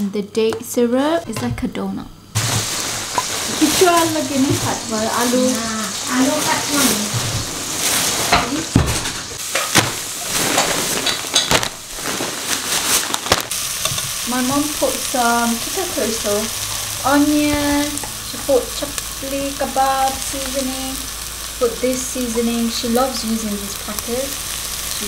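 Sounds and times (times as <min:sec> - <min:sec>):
onions sizzling in oil: 0:02.2 - 0:25.0.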